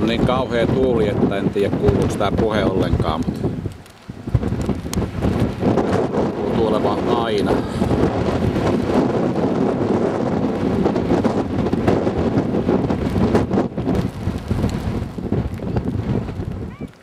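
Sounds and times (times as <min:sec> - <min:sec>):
wind buffeting microphone: 0:00.0 - 0:17.0
person speaking: 0:06.4 - 0:07.9.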